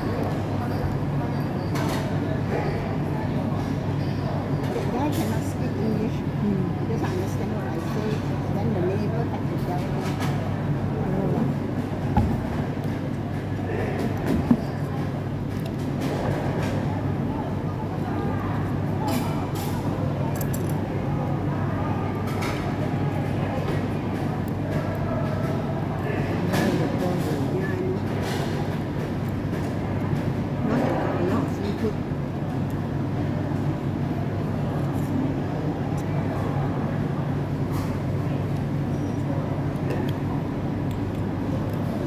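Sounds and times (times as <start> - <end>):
background crowd: 0.0 - 42.0
faint murmur: 0.0 - 42.0
ventilation hum: 0.0 - 42.0.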